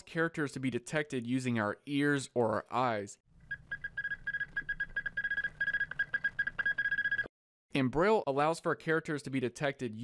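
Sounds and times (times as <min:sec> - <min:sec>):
morse code beeps: 0:03.5 - 0:07.3.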